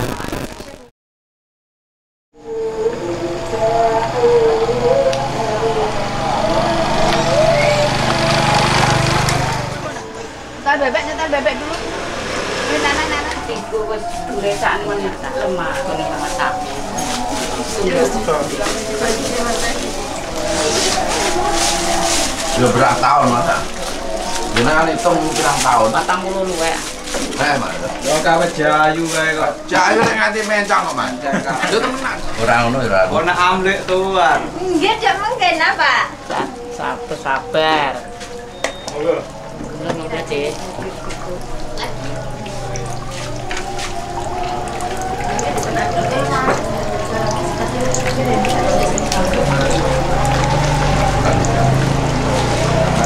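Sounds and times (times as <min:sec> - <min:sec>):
indistinct chatter: 0:02.5 - 0:53.0
people talking: 0:06.5 - 0:23.8, 0:24.4 - 0:38.1, 0:38.9 - 0:43.4, 0:45.0 - 0:52.7
stew being ladled: 0:38.0 - 0:53.0.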